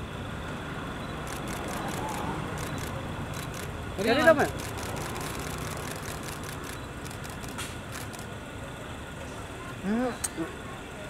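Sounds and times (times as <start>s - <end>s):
street noise: 0.0s - 11.0s
vehicle engine idling: 0.0s - 11.0s.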